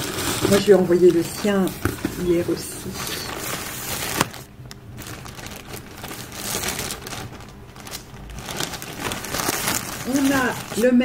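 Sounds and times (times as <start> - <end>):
plastic pouch crinkling: 0.0 - 11.0.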